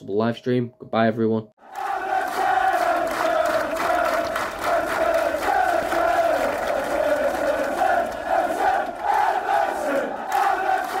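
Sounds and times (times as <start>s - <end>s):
football crowd chanting: 1.6s - 11.0s.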